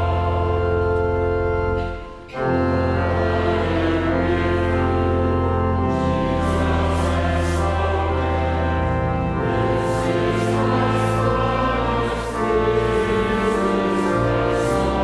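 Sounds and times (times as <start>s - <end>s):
congregation and choir singing: 0.0s - 15.0s
pipe organ: 0.0s - 15.0s.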